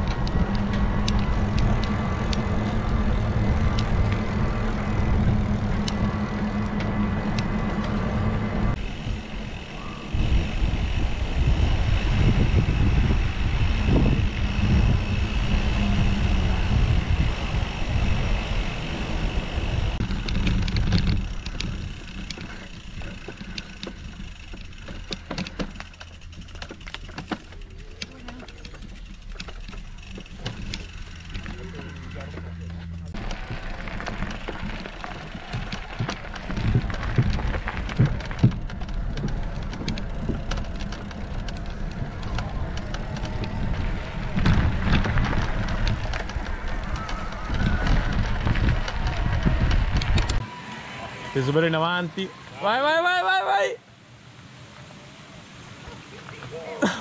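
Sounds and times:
scattered clicks: 0.0 - 9.8, 19.8 - 50.4
wind rushing over microphone: 0.0 - 24.3, 33.1 - 50.6
tyres rolling on tarmac: 0.0 - 57.0.

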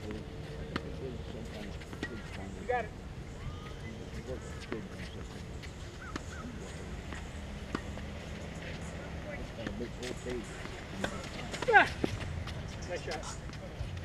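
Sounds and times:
distant voices: 0.0 - 14.0
tennis ball bouncing: 4.5 - 14.0
rackets striking tennis ball: 4.6 - 14.0.

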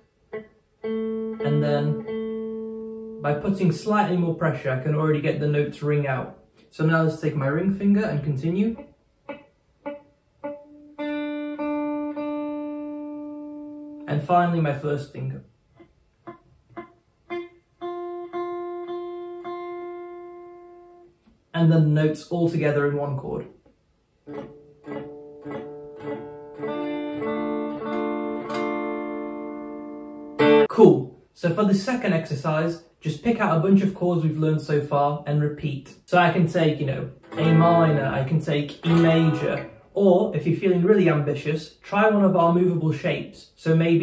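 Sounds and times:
electric guitar picked chord: 0.3 - 3.2, 24.3 - 30.7, 38.8 - 39.9
electric guitar note picked: 0.3 - 3.3, 8.7 - 14.1, 16.2 - 21.2, 24.2 - 30.7, 37.2 - 40.0.

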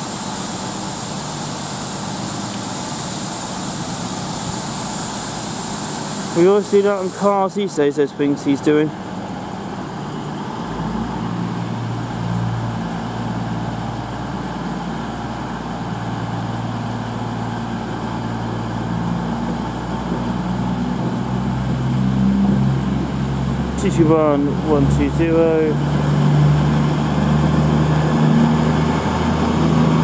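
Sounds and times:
train diesel engines droning: 0.0 - 30.0.

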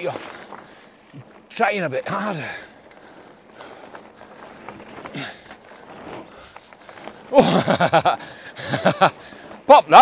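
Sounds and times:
bike tyres on gravel trail: 0.0 - 10.0
stones and bike rattling: 0.0 - 10.0.

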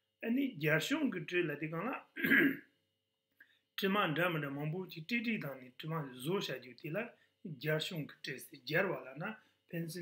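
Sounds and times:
man speaking: 0.2 - 2.4, 3.8 - 10.0
throat clearing: 2.2 - 2.8.

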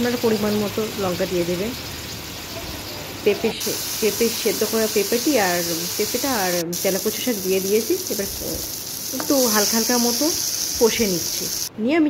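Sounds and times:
vegetables sizzling in hot oil: 0.0 - 11.7.

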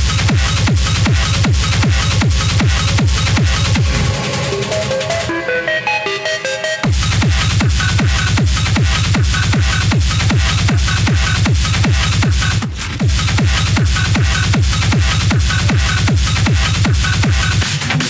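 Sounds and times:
heavy kick drum: 0.0 - 5.3, 6.8 - 18.0
hard techno music: 0.0 - 18.0.

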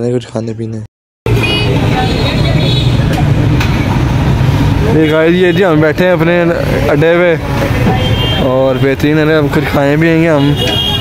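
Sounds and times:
low rumble of engines: 1.3 - 11.0
people's voices: 1.4 - 4.0.

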